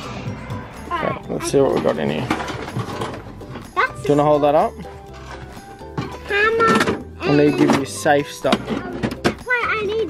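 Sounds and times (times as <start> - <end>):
light background music: 0.0 - 10.0
child speaking: 0.9 - 1.6, 3.7 - 4.1, 6.2 - 7.9, 8.7 - 10.0
rummaging in metal toolbox: 1.3 - 9.5.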